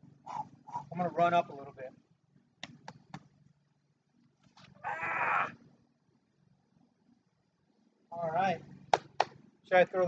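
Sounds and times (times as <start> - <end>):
quick sharp taps: 2.6 - 3.3.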